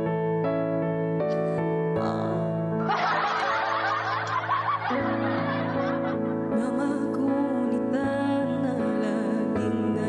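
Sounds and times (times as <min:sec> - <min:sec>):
sustained keyboard backing track: 0:00.0 - 0:10.0
woman laughing: 0:02.9 - 0:06.4.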